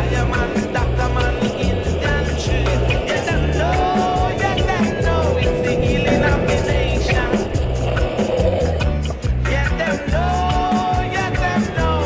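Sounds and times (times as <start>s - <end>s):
song with beat and bass line: 0.0s - 12.0s.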